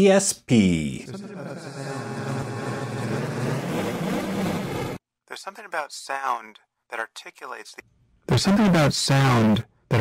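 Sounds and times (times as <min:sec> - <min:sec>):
droning granular vocal wash: 0:01.2 - 0:04.9.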